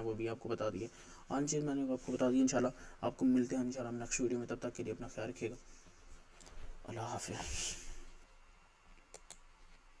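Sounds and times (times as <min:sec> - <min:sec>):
computer mouse clicks: 0:09.0 - 0:09.5.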